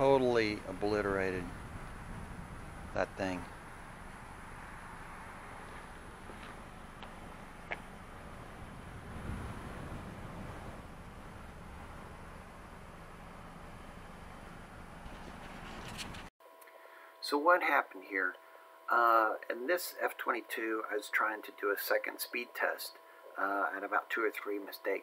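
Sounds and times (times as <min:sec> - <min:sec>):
low outdoor rumble: 0:00.0 - 0:16.3.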